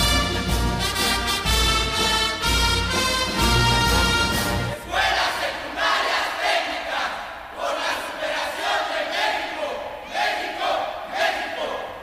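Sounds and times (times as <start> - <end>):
band music: 0.0 - 4.9.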